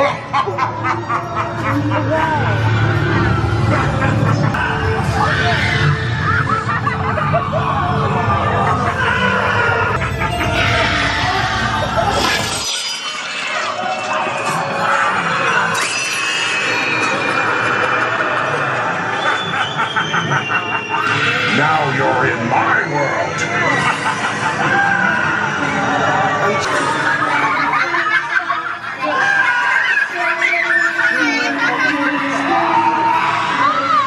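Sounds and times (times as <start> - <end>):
person laughing: 10.0 - 12.6.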